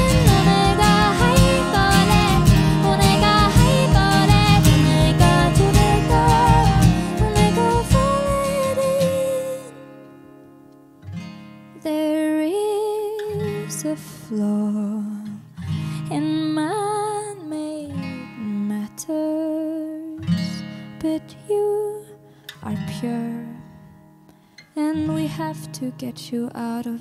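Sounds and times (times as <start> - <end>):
woman singing slow melody: 0.0 - 9.8, 11.8 - 23.8, 24.7 - 27.0
acoustic guitars strummed and plucked: 0.0 - 27.0.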